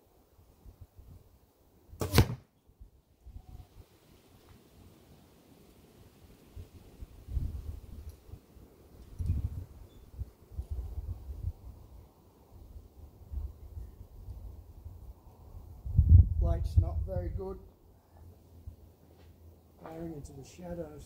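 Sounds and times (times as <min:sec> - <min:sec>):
arrow smacking into target: 0:02.0 - 0:02.5.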